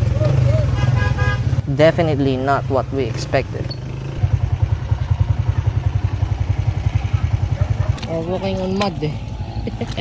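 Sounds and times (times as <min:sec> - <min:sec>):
motorcycle engine putter: 0:03.6 - 0:04.1, 0:07.7 - 0:10.0.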